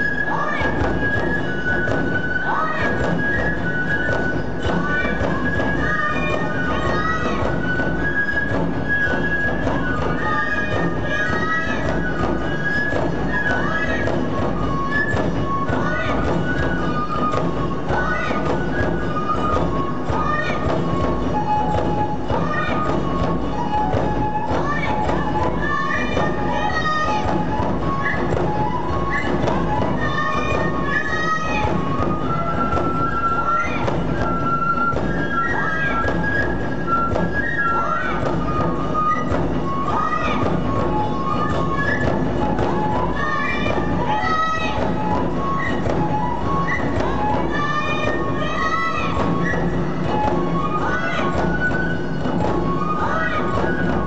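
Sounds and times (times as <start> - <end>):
voices: 0.0 - 1.4, 2.2 - 54.0
high flutes playing a melody: 0.0 - 54.0
steady drum beats: 0.0 - 54.0.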